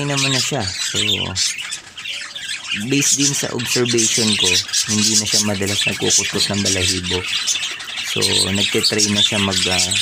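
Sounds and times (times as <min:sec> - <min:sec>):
parakeets chattering and squawking: 0:00.0 - 0:10.0.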